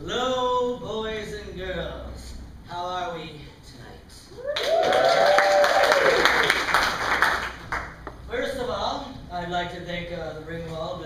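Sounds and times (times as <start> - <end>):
audience applause: 4.5 - 7.9.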